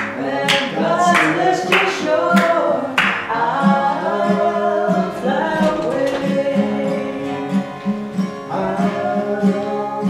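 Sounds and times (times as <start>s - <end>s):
voices singing unaccompanied: 0.0s - 10.0s.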